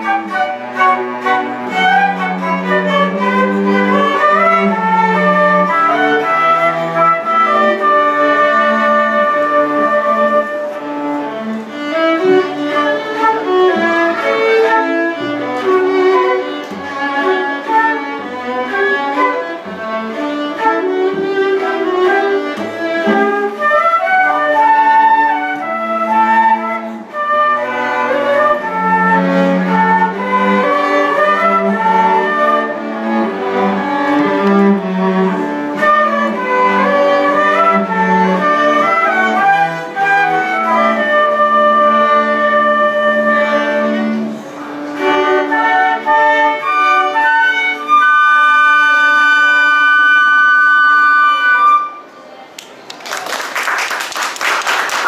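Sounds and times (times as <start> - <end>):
violin and cello: 0.0 - 52.1
flutes playing melody: 0.0 - 52.3.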